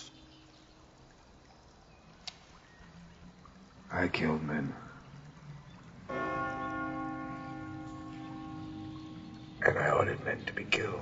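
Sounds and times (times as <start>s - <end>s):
church bell ringing: 6.0s - 11.0s.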